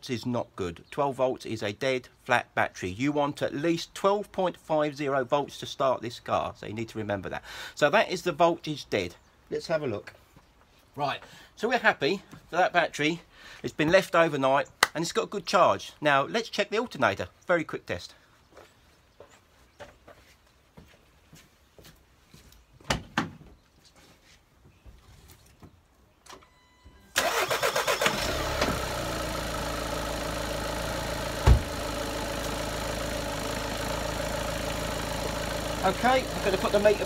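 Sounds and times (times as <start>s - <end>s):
diesel engine starting and idling: 27.1s - 37.0s.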